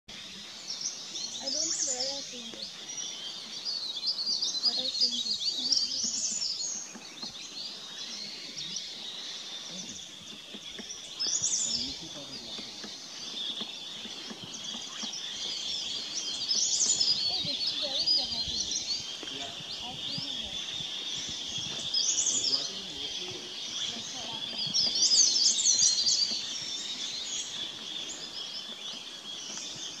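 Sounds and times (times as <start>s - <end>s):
birds chirping: 0.1s - 30.0s
outdoor background noise: 0.1s - 30.0s.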